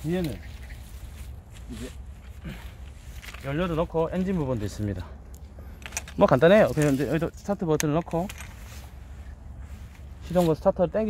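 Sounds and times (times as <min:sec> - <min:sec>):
faint rustling: 0:00.0 - 0:10.9
low steady rumble: 0:00.0 - 0:11.0.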